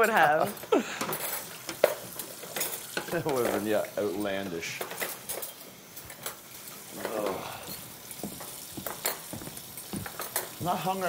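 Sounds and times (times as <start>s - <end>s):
cutlery and dishes clattering: 0.0s - 11.0s.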